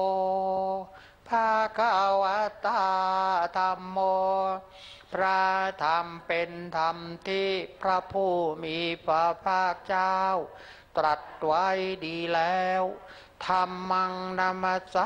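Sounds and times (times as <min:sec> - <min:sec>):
voices chanting in monotone: 0:00.0 - 0:15.0.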